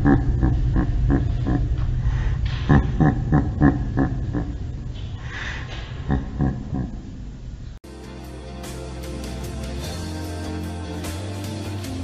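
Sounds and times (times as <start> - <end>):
man laughing heartily: 0.0 - 1.8, 2.6 - 4.8, 6.0 - 7.0.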